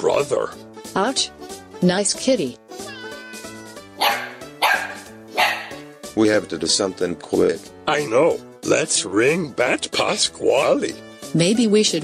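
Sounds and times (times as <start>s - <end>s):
background music: 0.0s - 12.0s
dog barking: 4.0s - 5.9s.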